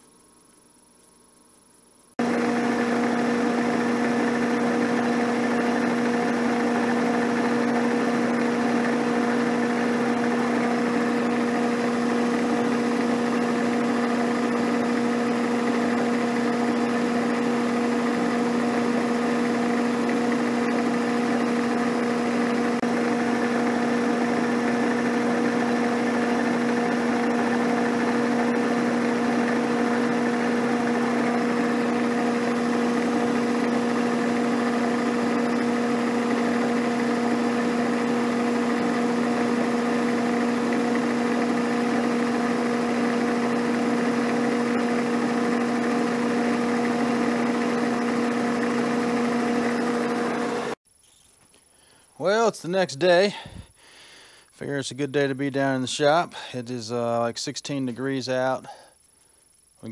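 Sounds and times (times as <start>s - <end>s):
milling machine cutting metal: 2.2s - 50.8s.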